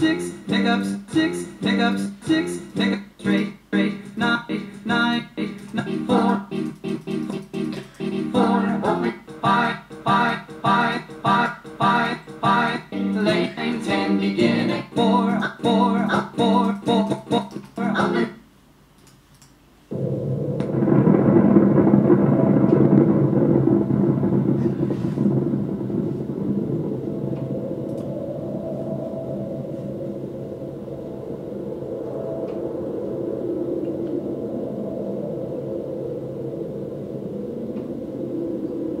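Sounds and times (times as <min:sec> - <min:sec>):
explosion deep rumble: 0:19.9 - 0:35.9.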